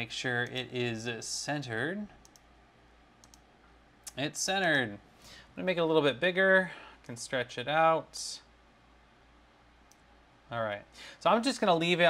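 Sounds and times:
low room hiss: 0:00.0 - 0:12.0
faint mouse clicks: 0:02.2 - 0:02.5, 0:03.2 - 0:04.2, 0:09.8 - 0:10.1.

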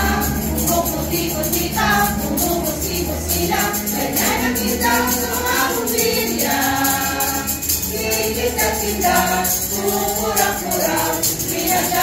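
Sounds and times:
group singing a carol: 0:00.0 - 0:12.0.

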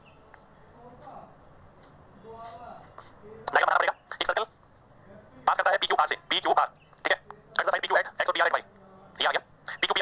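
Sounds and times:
man talking: 0:02.2 - 0:04.5, 0:05.1 - 0:10.0.

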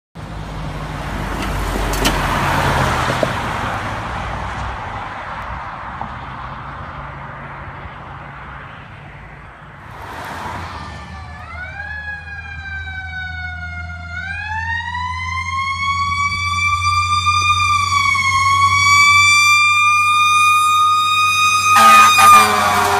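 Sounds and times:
road traffic passing: 0:00.2 - 0:22.9
truck going by: 0:00.2 - 0:22.9
fire engine siren wailing: 0:10.4 - 0:22.9.

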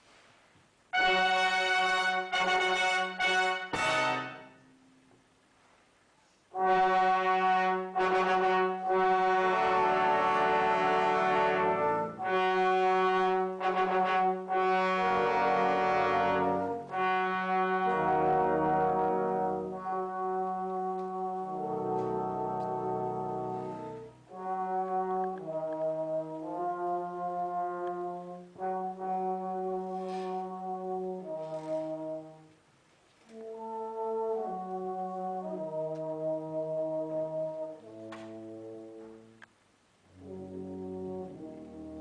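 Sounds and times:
brass band playing chords: 0:00.9 - 0:04.8, 0:06.5 - 0:32.6, 0:33.3 - 0:39.3, 0:40.1 - 0:42.0.

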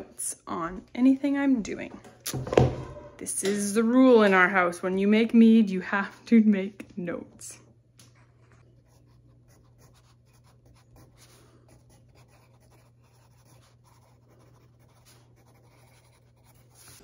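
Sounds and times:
pencil scratching on paper: 0:08.2 - 0:17.0.

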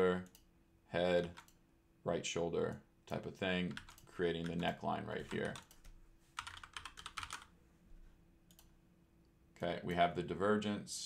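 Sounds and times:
computer keyboard typing: 0:01.2 - 0:01.6, 0:03.1 - 0:07.5.

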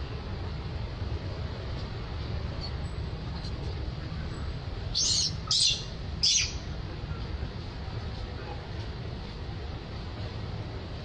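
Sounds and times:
infant monkey squealing: 0:05.0 - 0:06.6.

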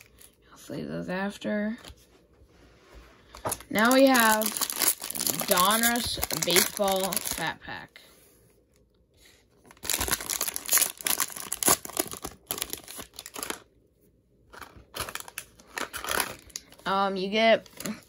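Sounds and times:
plastic wrapper tearing and crinkling: 0:03.4 - 0:07.8, 0:09.6 - 0:13.7, 0:14.5 - 0:17.0, 0:17.6 - 0:18.0.

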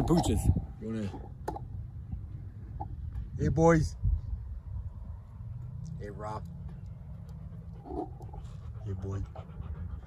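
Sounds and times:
dog panting: 0:07.1 - 0:10.0.

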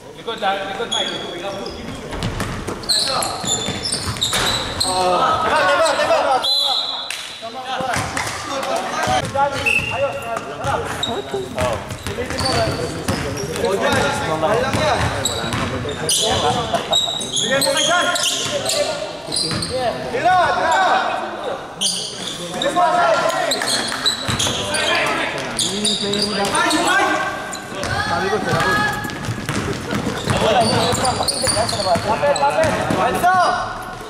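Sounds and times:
players calling out: 0:07.8 - 0:33.8
basketball bouncing on wooden floor: 0:11.6 - 0:14.0, 0:27.8 - 0:33.0.

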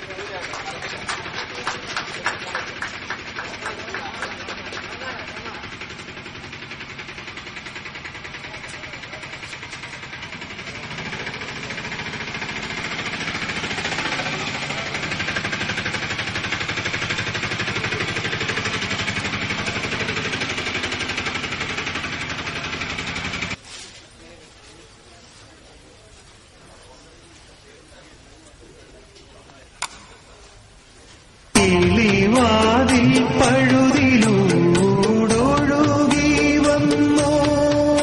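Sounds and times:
audience applause: 0:00.0 - 0:06.4, 0:10.6 - 0:23.3.

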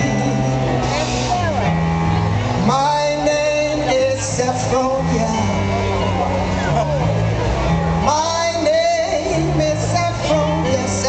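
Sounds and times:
bass guitar notes: 0:00.0 - 0:11.0
people's voices: 0:00.0 - 0:11.0.

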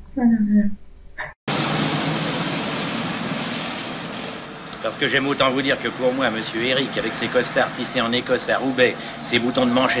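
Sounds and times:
engine and traffic noise: 0:01.5 - 0:10.0
man speaking: 0:04.9 - 0:10.0.

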